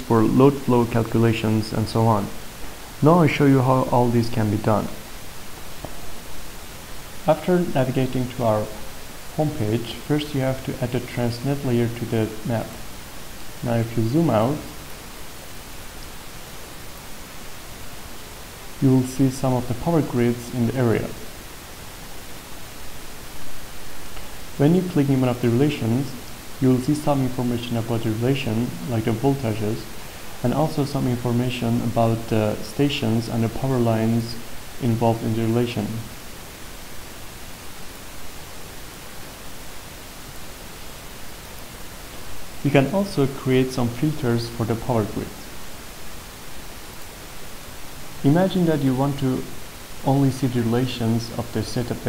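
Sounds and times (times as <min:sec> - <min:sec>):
microphone hiss: 0:00.0 - 0:52.0.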